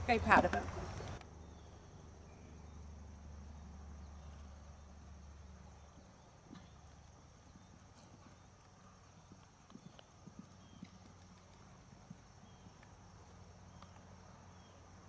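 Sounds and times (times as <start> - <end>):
muffled hoofbeats on sand: 5.7 - 14.0.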